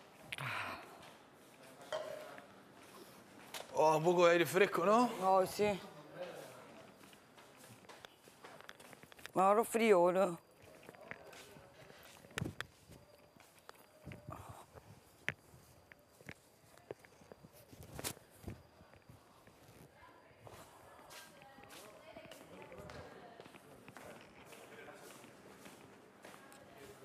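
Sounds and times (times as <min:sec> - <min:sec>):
faint footsteps: 0:05.0 - 0:27.0.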